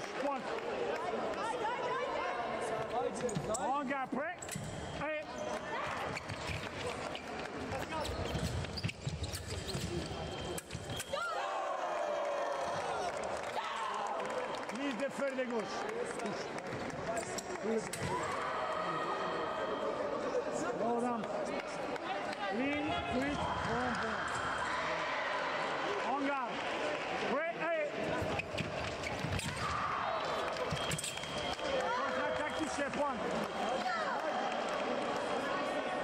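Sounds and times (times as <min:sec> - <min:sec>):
shoes squeaking on floor: 0:04.5 - 0:11.3, 0:28.1 - 0:32.8
murmur of voices: 0:12.9 - 0:36.0.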